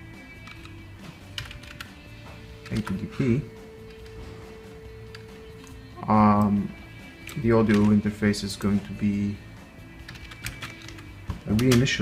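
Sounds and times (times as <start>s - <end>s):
keyboard keys clicking: 0.4s - 2.0s, 2.6s - 4.2s, 5.0s - 6.5s, 7.2s - 8.0s, 10.0s - 11.9s.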